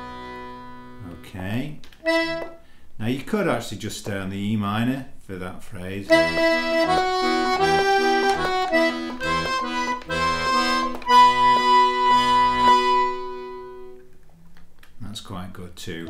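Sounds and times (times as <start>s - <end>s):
button accordion playing: 0.0s - 1.3s, 2.0s - 2.6s, 6.1s - 14.0s.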